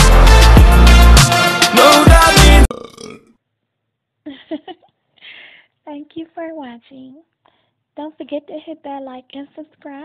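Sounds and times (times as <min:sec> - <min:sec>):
loud music with gliding sounds: 0:00.0 - 0:02.7.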